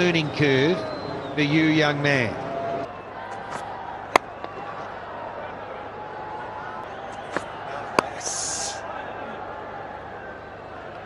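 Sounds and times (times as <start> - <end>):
stadium crowd murmur: 0.0 - 11.0
cricket bat hitting ball: 3.4 - 4.7, 7.1 - 8.2.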